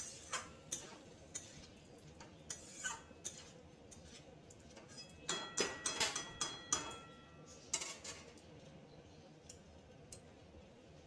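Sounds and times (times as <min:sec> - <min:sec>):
metal spatula clinking on wok: 0:04.8 - 0:08.1.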